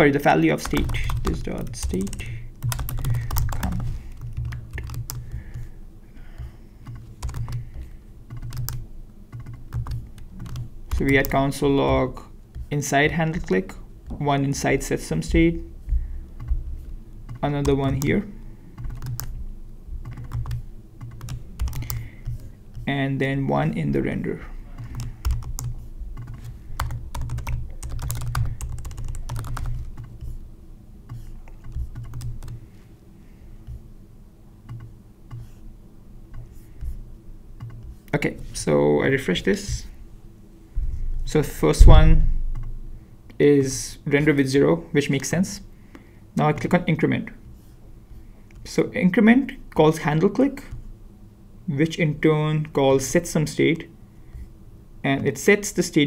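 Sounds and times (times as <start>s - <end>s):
computer keyboard key clicks: 0.6s - 5.6s, 8.3s - 11.4s.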